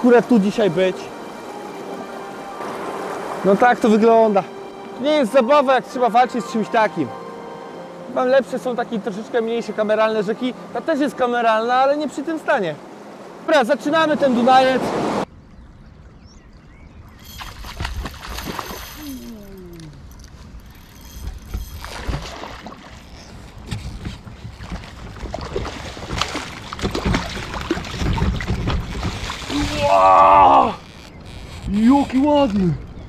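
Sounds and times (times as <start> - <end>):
water splashing and sloshing: 0.0 - 16.2, 17.1 - 33.0.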